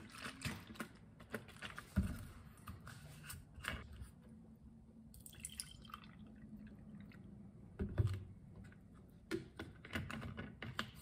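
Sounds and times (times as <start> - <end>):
juice pouring into a cup: 5.2 - 7.2.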